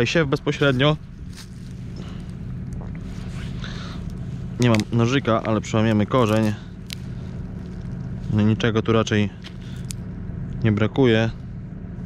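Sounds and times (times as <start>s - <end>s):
tractor engine idling: 0.0s - 12.0s
plant rustling: 0.4s - 10.0s.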